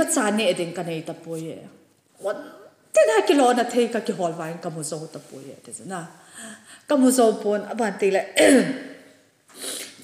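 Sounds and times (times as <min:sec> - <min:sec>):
woman speaking into a microphone: 0:00.0 - 0:06.2, 0:06.8 - 0:08.9.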